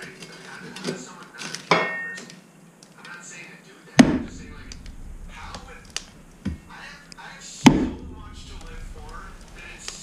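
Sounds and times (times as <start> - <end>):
log knocking into wood stove: 4.0 - 6.8, 7.7 - 9.7.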